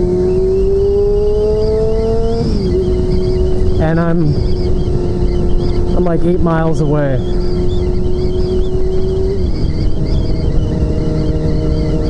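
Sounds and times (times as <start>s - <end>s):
motorcycle engine running: 0.0s - 12.0s
wind noise on microphone: 0.0s - 12.0s.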